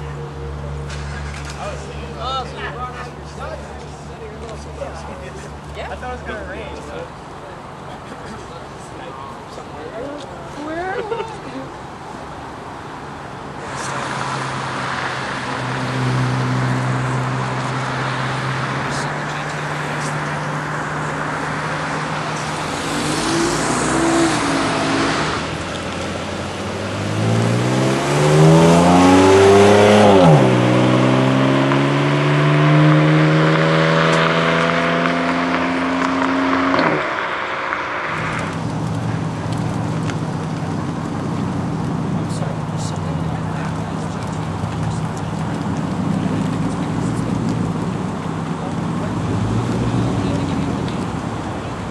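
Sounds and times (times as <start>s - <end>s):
car accelerating hard: 13.6s - 51.9s.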